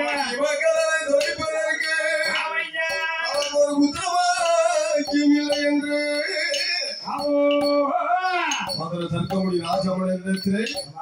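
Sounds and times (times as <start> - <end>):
men singing held notes: 0.0 - 11.0.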